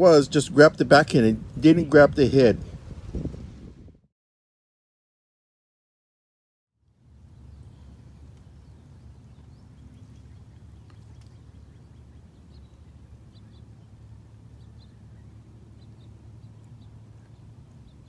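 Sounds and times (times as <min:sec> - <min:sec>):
wind and water rumble: 0:00.0 - 0:04.1, 0:06.9 - 0:18.0
bird chirps: 0:07.3 - 0:18.0.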